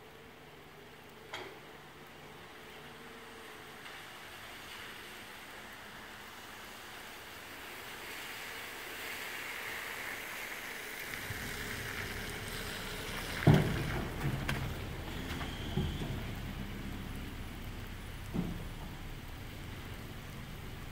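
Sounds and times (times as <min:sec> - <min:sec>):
steady hiss: 0:00.0 - 0:20.9
low rumble: 0:11.1 - 0:20.9.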